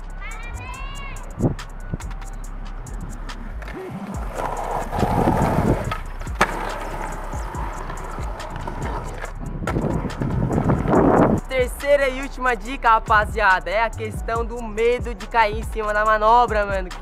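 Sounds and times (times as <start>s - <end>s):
skateboard wheels rolling on concrete: 0.6s - 12.0s
skateboard clack: 3.3s - 11.2s.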